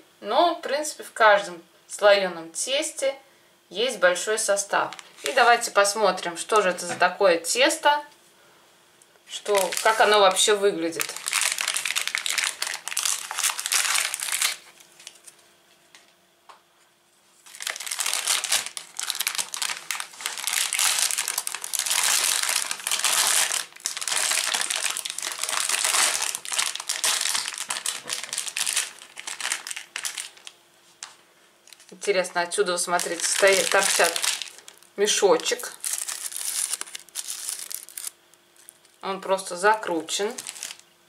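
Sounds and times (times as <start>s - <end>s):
plastic and foil packet crinkling: 4.7s - 5.7s, 9.3s - 15.4s, 17.4s - 32.2s, 32.8s - 39.0s, 39.9s - 40.8s.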